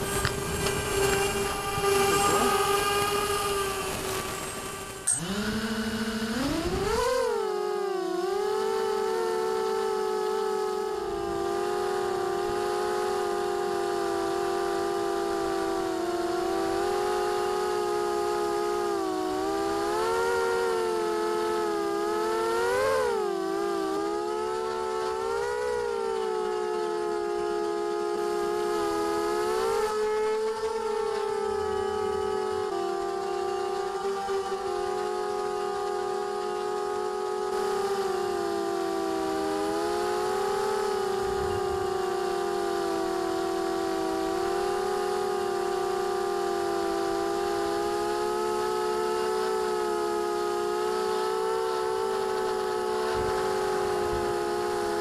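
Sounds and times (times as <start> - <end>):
quadcopter motors whining: 0.0 - 55.0.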